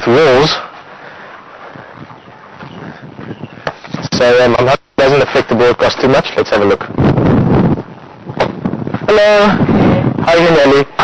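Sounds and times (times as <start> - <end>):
light footsteps on pavement: 1.6 - 4.1.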